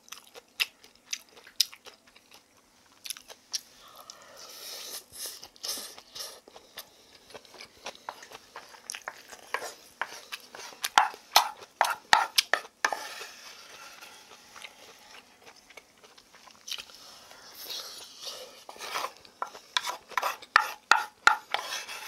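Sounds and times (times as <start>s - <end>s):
chewing with sharp clicks: 0.0s - 4.2s
wooden spoon scraping wooden bowl: 8.1s - 15.5s, 17.5s - 22.0s.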